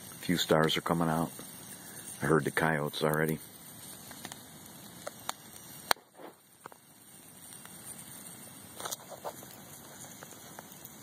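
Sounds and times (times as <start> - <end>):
campfire hissing: 0.0 - 11.0
fire crackles and pops: 0.0 - 11.0.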